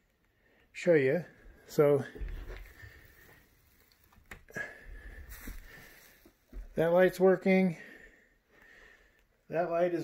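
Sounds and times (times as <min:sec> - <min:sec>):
faint handling noise: 0:01.7 - 0:07.1.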